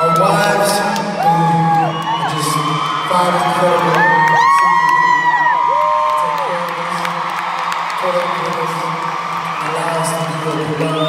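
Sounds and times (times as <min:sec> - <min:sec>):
concert crowd cheering: 0:00.0 - 0:11.0.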